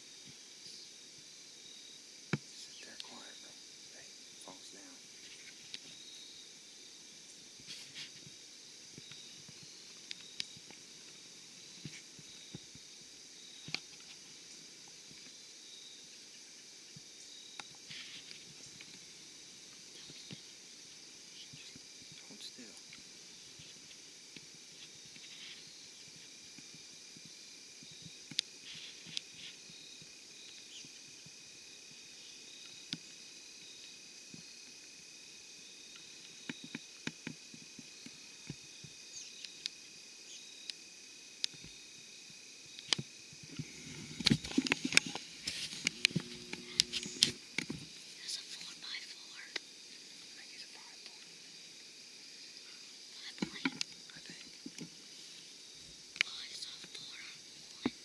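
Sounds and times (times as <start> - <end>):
insect chorus: 0.0 - 58.0.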